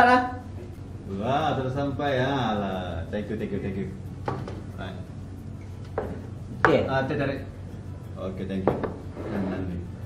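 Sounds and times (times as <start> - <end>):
ceramic mug knocking on table: 4.2 - 4.6, 6.0 - 6.8, 8.6 - 9.0.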